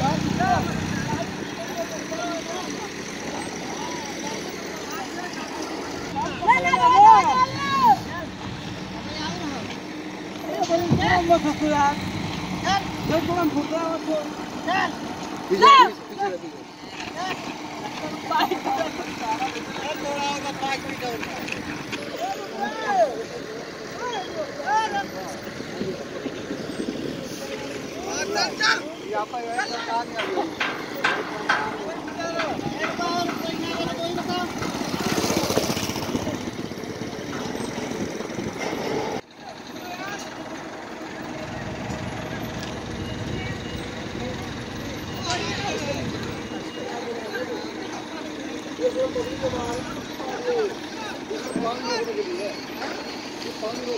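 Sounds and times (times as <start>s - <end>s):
people calling out: 0.0s - 9.7s, 14.6s - 26.2s
indistinct voices: 0.0s - 53.9s
steady engine hum: 0.0s - 53.9s.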